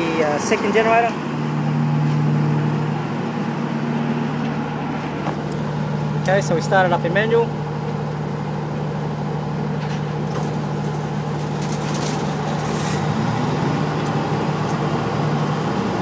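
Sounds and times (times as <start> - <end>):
generator engine rising in pitch: 0.0 - 11.4, 12.2 - 16.0
diesel generators humming: 0.0 - 16.0.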